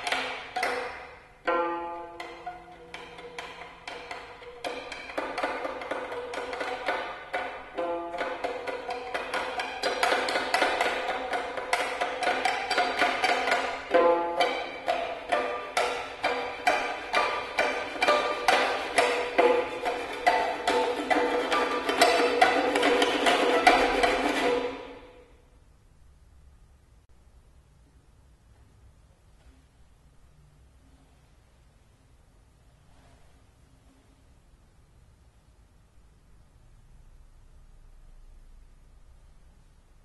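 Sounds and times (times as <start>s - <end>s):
percussive pitched violin taps: 0.0s - 25.2s.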